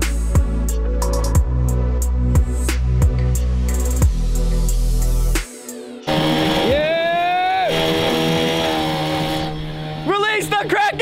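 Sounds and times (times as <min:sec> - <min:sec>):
loud rising tone: 0:06.0 - 0:10.1
outboard motor running: 0:06.0 - 0:10.8.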